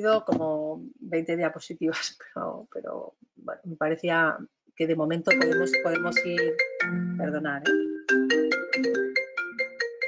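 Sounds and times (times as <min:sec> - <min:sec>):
phone ringtone melody: 0:05.3 - 0:10.0.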